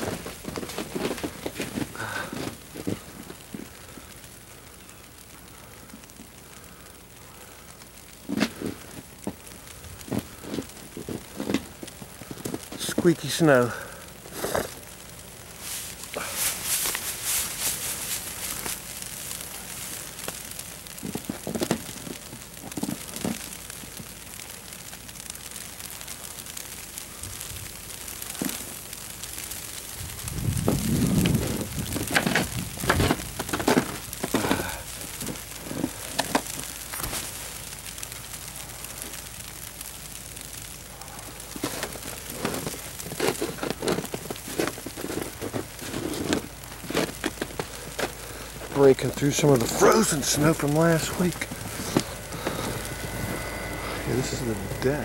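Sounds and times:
footsteps crunching in snow: 0.0 - 3.8, 10.0 - 13.2, 14.3 - 23.6, 28.1 - 37.8, 41.5 - 55.0
low muffled rush: 47.6 - 55.0.

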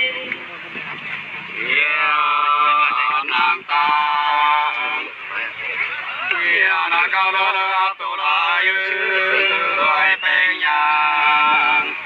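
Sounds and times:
folk singing with long notes: 0.0 - 12.0.

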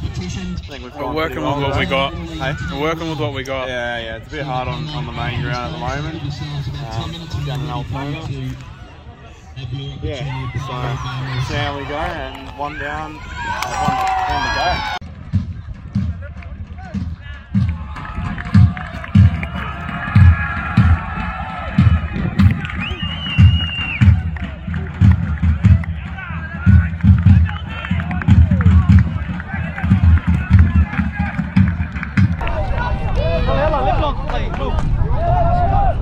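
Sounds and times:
distant voices and shouts: 4.1 - 15.0
wind buffeting microphone: 10.4 - 36.0.

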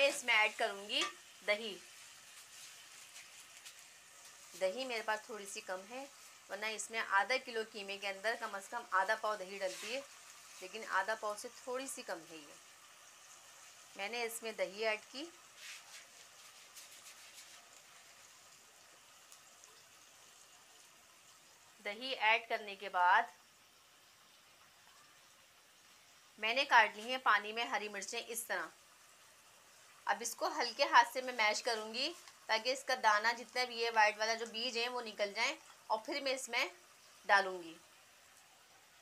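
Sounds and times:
meat frying in oil: 0.0 - 39.0
small crackles of frying: 0.0 - 39.0.

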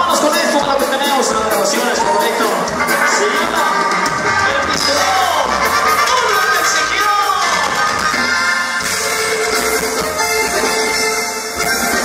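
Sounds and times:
crowd shouting and cheering: 0.0 - 12.0
loud dance music: 0.4 - 10.8.

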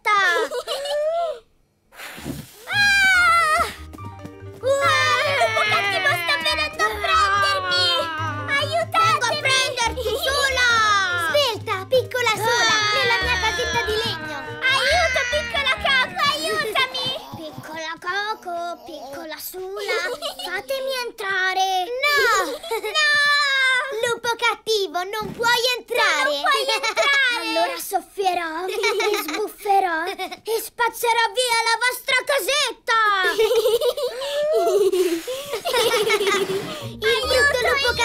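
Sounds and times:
low background music: 2.8 - 16.8, 36.4 - 38.0
children's voices: 4.6 - 38.0
cartoon child vocal sound: 4.7 - 11.5, 12.4 - 19.3.

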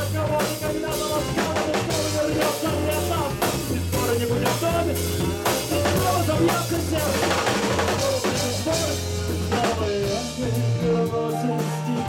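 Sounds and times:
drum kit beat: 0.0 - 12.0
live band music: 0.0 - 12.0.

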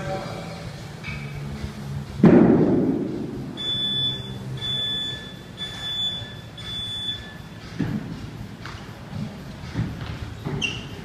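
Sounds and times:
high-pitched timer beeps: 3.6 - 7.6.

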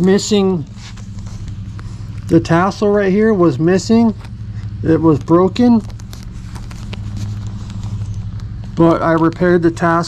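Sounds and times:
motor hum with fast pulse: 0.0 - 9.9.

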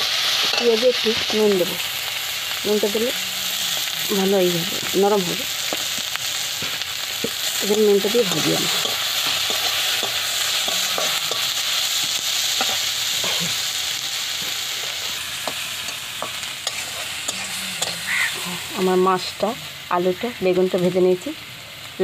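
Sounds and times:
onions sizzling in oil: 0.0 - 22.0
metal spatula scraping pan: 8.3 - 13.4, 15.4 - 18.7.

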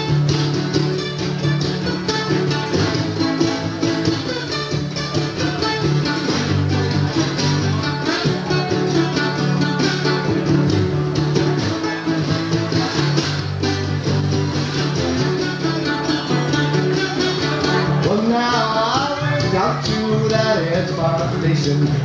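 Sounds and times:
fingerpicked acoustic blues guitar: 0.0 - 22.0.

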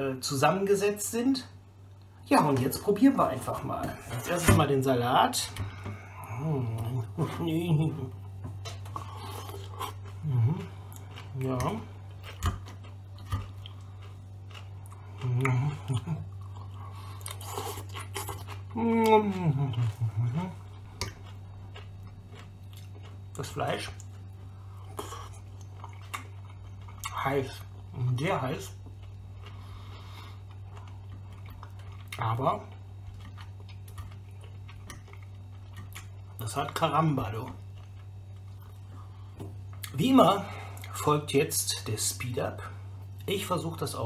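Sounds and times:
steady low hum: 0.0 - 44.0
person chewing salad: 8.1 - 28.1, 28.7 - 36.4, 37.3 - 41.0
person humming: 10.2 - 10.7, 15.2 - 16.2, 18.7 - 20.7.

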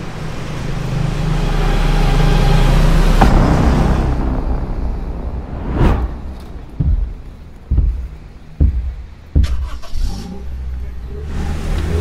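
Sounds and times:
car engine and tyres on road: 0.0 - 12.0.

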